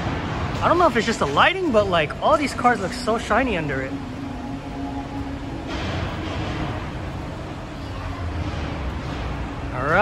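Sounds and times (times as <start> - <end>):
rushing noise: 0.0 - 10.0
steady low hum: 0.0 - 10.0.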